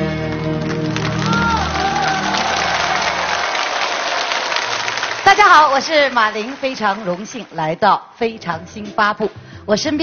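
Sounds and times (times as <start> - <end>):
song accompaniment low notes: 0.0 - 3.4
audience applauding: 0.0 - 8.0.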